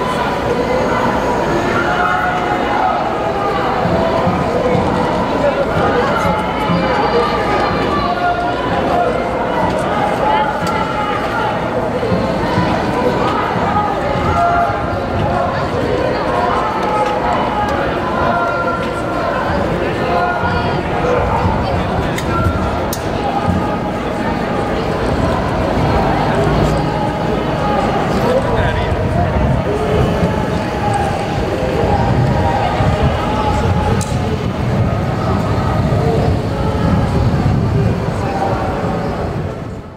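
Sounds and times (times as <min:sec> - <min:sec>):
faint voices: 0:00.0 - 0:39.9
outdoor street noise: 0:00.0 - 0:39.9.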